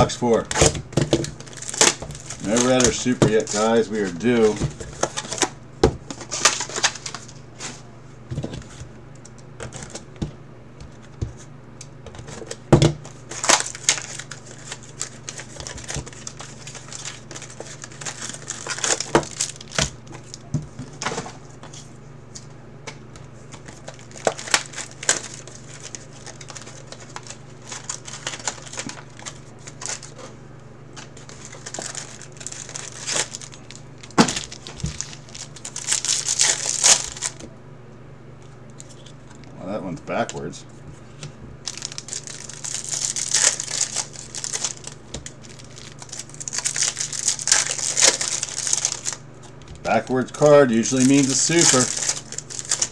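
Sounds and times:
foil wrappers crinkling: 0.0 - 8.9, 12.2 - 21.9, 23.3 - 37.5, 41.1 - 52.9
steady low hum: 0.0 - 52.9.

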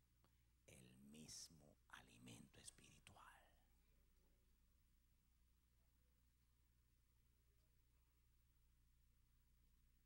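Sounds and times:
faint low hum: 0.0 - 10.0
faint whispered speech: 0.7 - 3.7.

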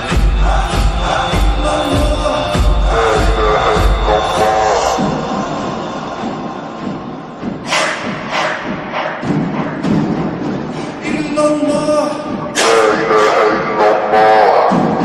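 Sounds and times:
chanted voices: 0.0 - 9.3, 10.8 - 15.0
sharp percussive hits: 0.0 - 13.3
deep thudding beats: 0.0 - 15.0.

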